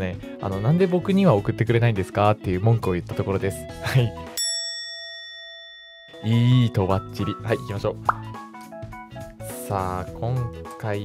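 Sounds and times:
bell-like chime: 4.3 - 7.4.

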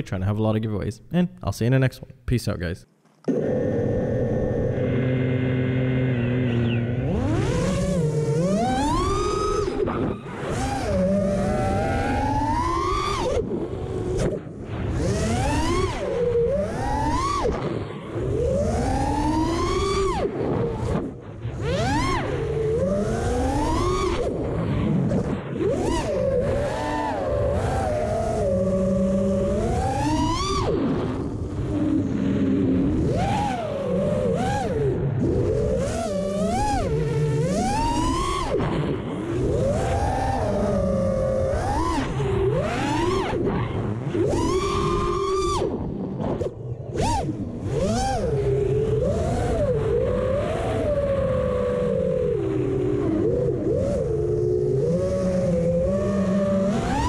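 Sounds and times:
quadcopter motors whining: 3.2 - 57.0.

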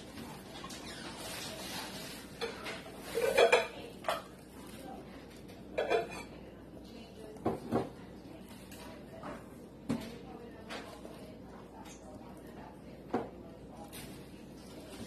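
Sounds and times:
utensils and dishes clinking: 0.4 - 4.8, 5.4 - 6.5.

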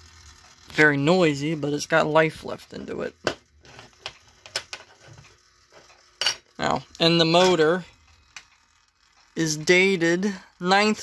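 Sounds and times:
small gear motor running: 0.0 - 11.0.

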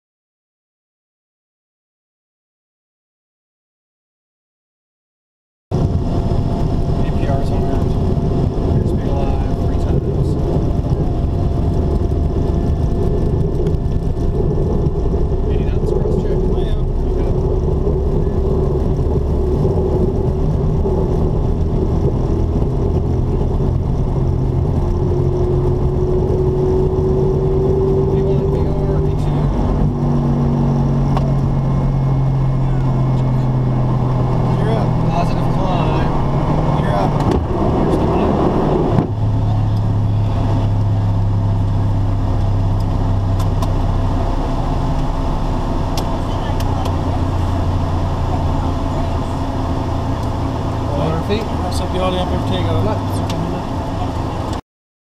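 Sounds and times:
takeoff roll rumble: 5.7 - 54.6
jet engines roaring: 5.8 - 54.6.

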